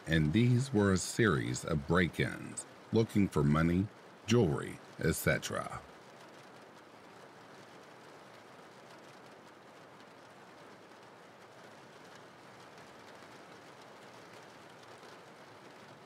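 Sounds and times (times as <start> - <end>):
faint steady rain: 0.0 - 16.0.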